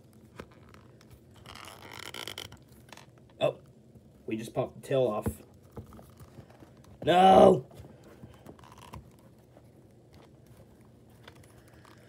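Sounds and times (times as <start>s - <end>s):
soft rustle: 0.0s - 3.3s, 5.0s - 12.0s.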